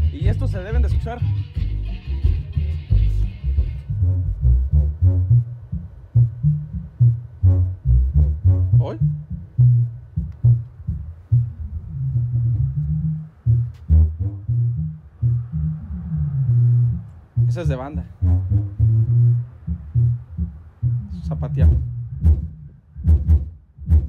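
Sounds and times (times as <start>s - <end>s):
heavy bass music from loudspeaker: 0.0s - 24.0s.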